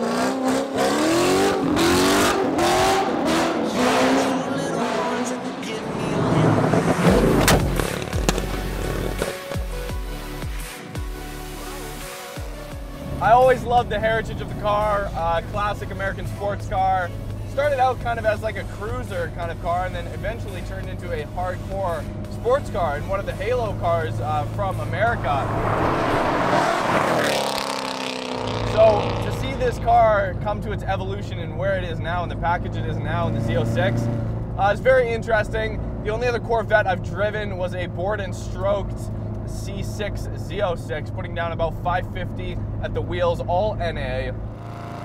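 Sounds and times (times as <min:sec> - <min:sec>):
car driving at speed: 0:00.0 - 0:09.5, 0:12.5 - 0:45.0
car driving past: 0:03.3 - 0:09.3, 0:23.8 - 0:29.6
music with deep bass line: 0:06.2 - 0:25.9.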